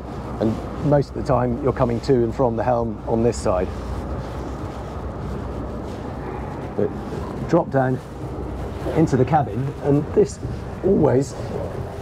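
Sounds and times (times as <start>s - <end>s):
diesel engines idling: 0.0s - 12.0s.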